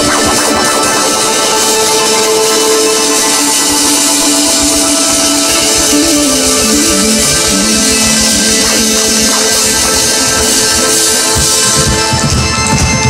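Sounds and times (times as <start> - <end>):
electric guitar melody: 0.0 - 13.0
live rock band playing: 0.0 - 13.0.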